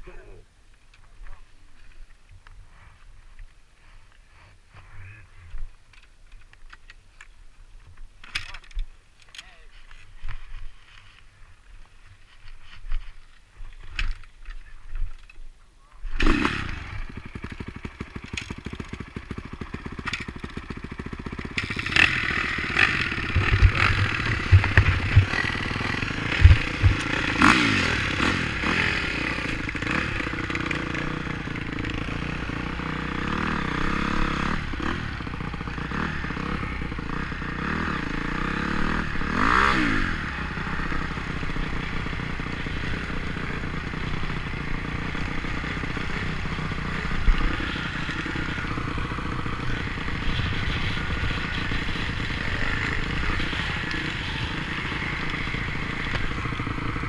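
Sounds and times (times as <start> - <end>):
dirt bike engine revving: 16.1 - 57.0
bike clattering over rough ground: 17.2 - 28.2.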